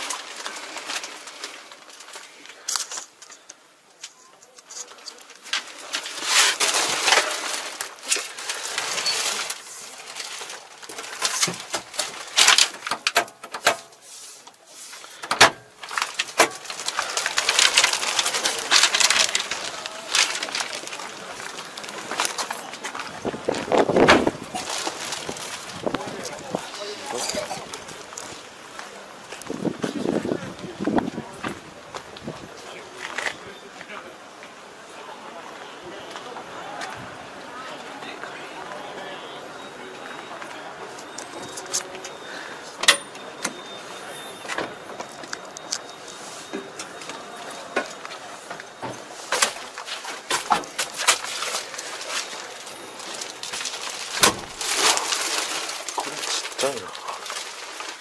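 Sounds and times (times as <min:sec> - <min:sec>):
faint voices: 0:00.0 - 0:13.0, 0:14.0 - 0:58.0
rustling and handling noise: 0:00.0 - 0:33.5, 0:39.6 - 0:58.0
outdoor background noise: 0:00.0 - 0:58.0.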